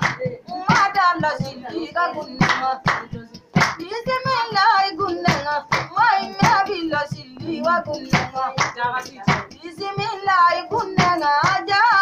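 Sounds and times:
high voice singing: 0.0s - 12.0s
steady percussive beat: 0.0s - 12.0s.

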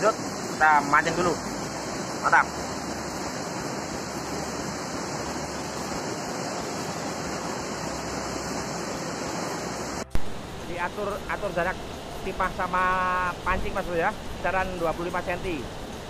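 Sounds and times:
man speaking: 0.0s - 1.4s
river rushing over rapids: 0.0s - 16.0s.

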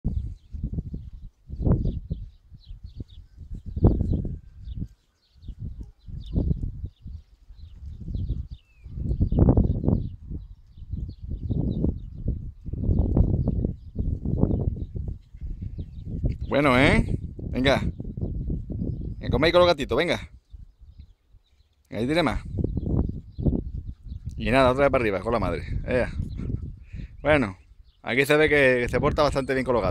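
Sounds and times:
wind buffeting microphone: 0.0s - 29.9s.

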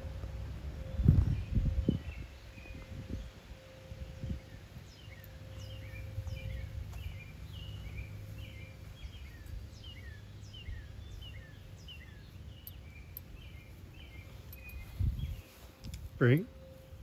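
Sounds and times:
low rumble on microphone: 0.0s - 17.0s
small birds chirping: 4.4s - 17.0s.

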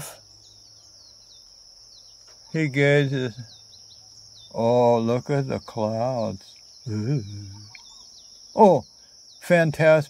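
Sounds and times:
faint background noise: 0.0s - 10.0s
high-pitched insect drone: 0.0s - 10.0s
short falling bird chirps: 6.2s - 9.4s.

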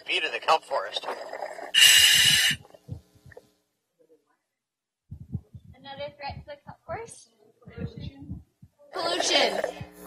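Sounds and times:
regulator air hiss: 1.8s - 2.7s.

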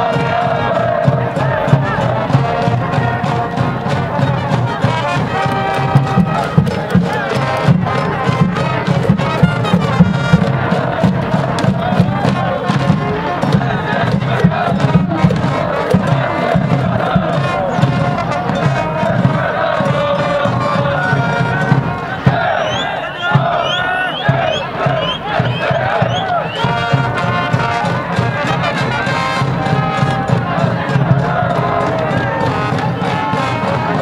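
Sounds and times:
brass band playing: 0.0s - 34.0s
crowd chanting and shouting: 0.0s - 34.0s.

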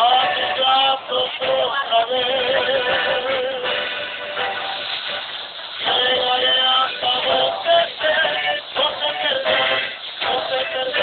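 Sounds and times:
men singing: 0.0s - 3.8s, 5.8s - 11.0s
acoustic guitar: 0.0s - 11.0s.

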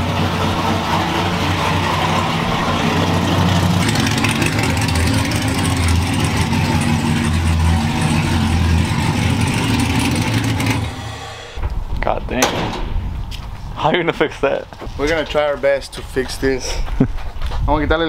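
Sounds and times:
pickup engine idling: 0.0s - 11.7s.

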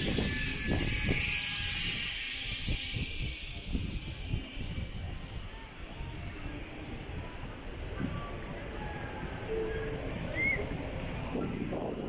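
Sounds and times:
steady high hiss: 0.0s - 11.2s.

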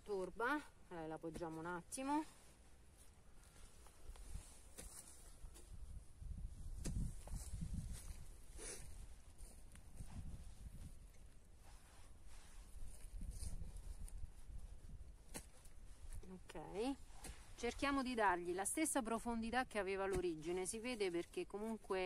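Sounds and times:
hands rustling soil: 0.0s - 22.0s.

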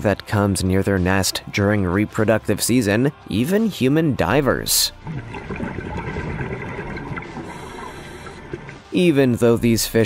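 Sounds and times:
underwater rushing water: 5.0s - 9.1s.

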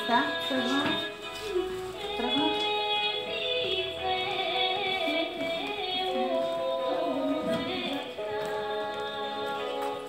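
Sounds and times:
song with sung melody: 0.0s - 10.0s.

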